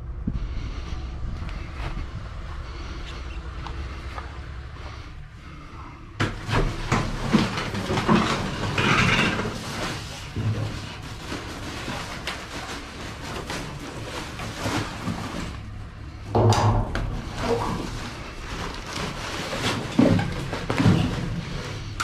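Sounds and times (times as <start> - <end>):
plastic trash bag rustling: 6.3 - 22.0
knocks in metal dumpster: 16.4 - 17.5.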